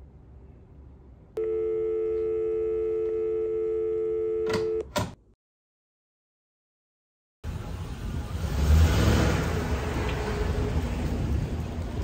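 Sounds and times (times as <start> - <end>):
telephone dial tone: 1.4 - 4.9.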